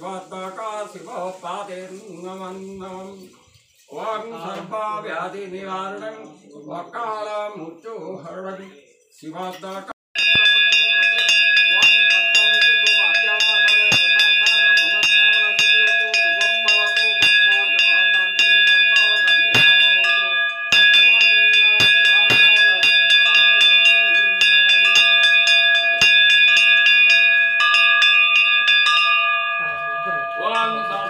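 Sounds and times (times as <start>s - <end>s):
brass bell rung rapidly: 10.2s - 31.0s.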